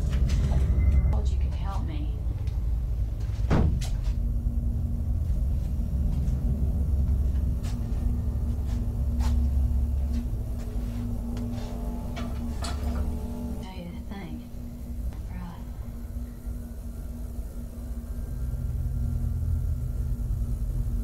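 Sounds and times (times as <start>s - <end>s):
low rumbling drone: 0.0s - 21.0s.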